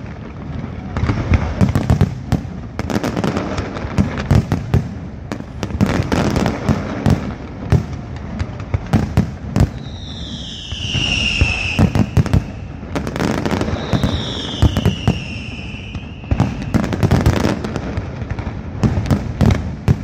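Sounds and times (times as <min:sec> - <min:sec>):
fireworks bangs and crackle: 0:00.0 - 0:20.0
descending firework whistle: 0:09.5 - 0:18.0.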